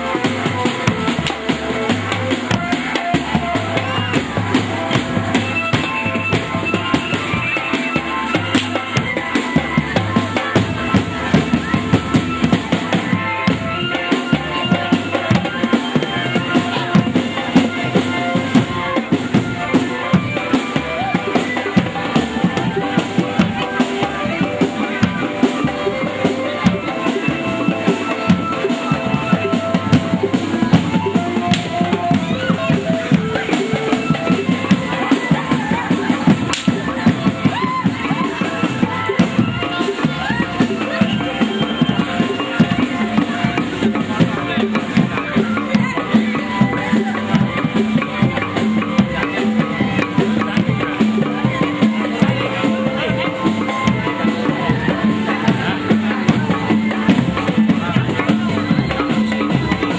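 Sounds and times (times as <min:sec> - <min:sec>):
hand drums fast beat: 0:00.0 - 0:59.9
held melodic tones: 0:00.0 - 0:59.9.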